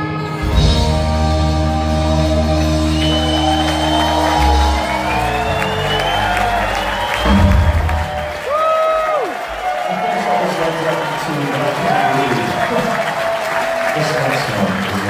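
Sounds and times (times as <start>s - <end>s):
rock band low chord: 0.0s - 8.2s
crowd cheering and whooping: 2.6s - 14.7s
low band hit: 7.0s - 8.3s.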